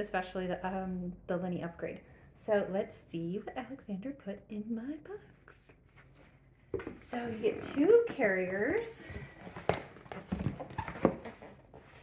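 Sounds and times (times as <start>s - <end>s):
cardboard box knocking and scraping: 9.2s - 12.0s.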